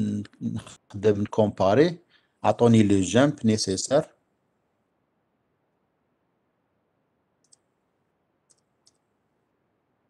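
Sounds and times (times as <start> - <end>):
faint computer input clicks: 7.4 - 7.7.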